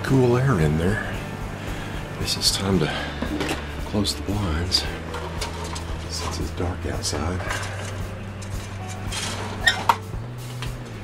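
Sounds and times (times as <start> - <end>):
window blind slats rustling: 4.7 - 10.7.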